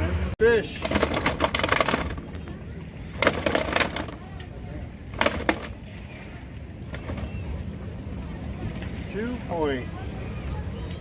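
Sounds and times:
low steady rumble: 0.0s - 11.0s
fish flopping rattling and splashing: 0.6s - 4.4s, 5.0s - 6.0s.

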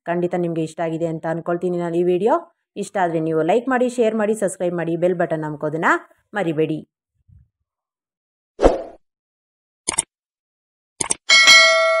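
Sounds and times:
quick clicks: 9.9s - 10.1s, 11.0s - 11.2s
notification bell ding: 11.3s - 12.0s.

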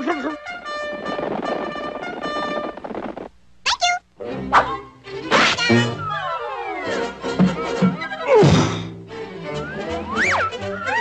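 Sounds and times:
cartoon orchestral music: 4.2s - 11.0s.

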